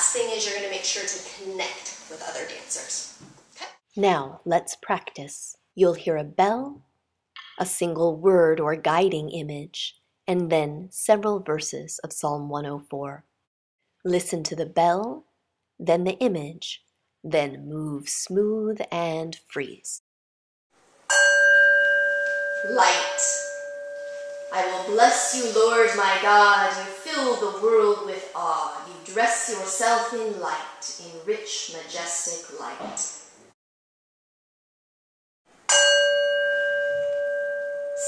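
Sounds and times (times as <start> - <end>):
bell ringing: 21.1 - 25.2, 35.7 - 38.0.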